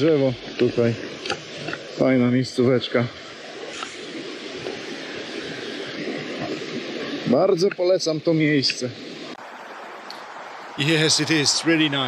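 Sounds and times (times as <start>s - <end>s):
river rushing over rocks: 8.7s - 12.0s.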